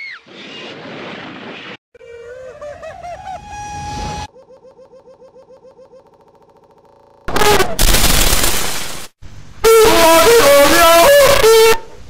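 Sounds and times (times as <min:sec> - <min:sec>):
looped cartoon yell stutter: 0:09.6 - 0:11.8.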